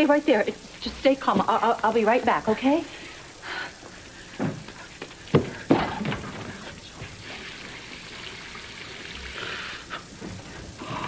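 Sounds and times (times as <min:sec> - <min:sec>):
tap water running: 0:03.8 - 0:11.0.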